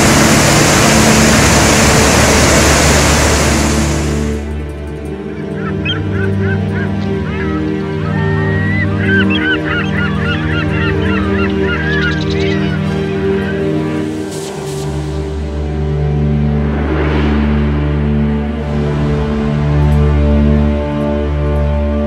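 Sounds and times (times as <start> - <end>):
large waterfall rushing: 0.0 - 4.4
sustained music tones: 0.0 - 22.0.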